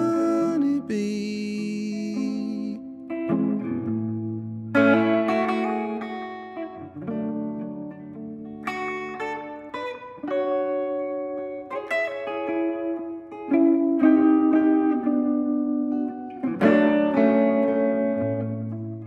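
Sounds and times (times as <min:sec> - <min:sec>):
electric guitar through an amp: 0:00.0 - 0:19.0
strummed guitar chords: 0:00.0 - 0:19.0.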